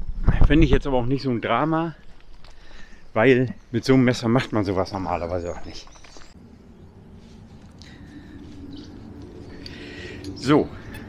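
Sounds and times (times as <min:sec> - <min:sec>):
faint bird chirps: 0:04.9 - 0:11.0
low background hum: 0:05.8 - 0:11.0.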